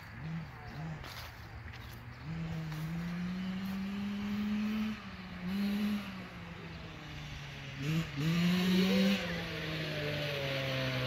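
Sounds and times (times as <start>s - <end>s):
small engine revving: 0.0s - 11.0s.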